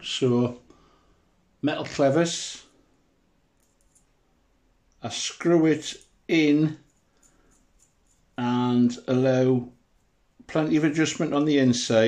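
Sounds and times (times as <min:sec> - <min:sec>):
faint small clicks: 0:03.5 - 0:04.2, 0:06.8 - 0:08.4.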